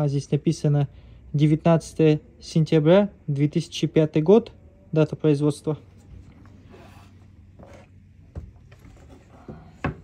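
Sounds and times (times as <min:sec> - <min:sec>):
handling noise rubbing and scraping: 0:05.8 - 0:10.0.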